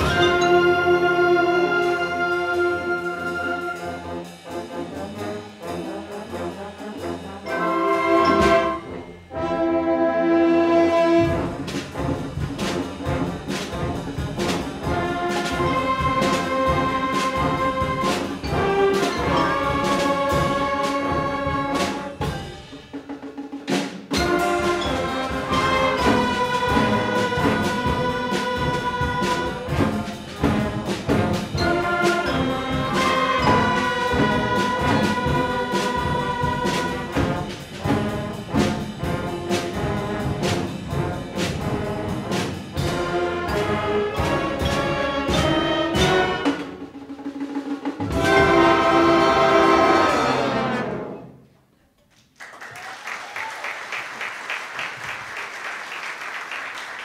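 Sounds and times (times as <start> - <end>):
percussion strikes: 0.0 - 9.7, 11.2 - 50.4
concert band playing: 0.0 - 51.3.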